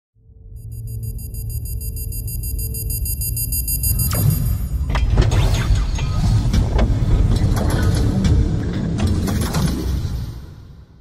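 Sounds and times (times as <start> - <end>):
high pulsing electronic tone: 0.6 - 4.9.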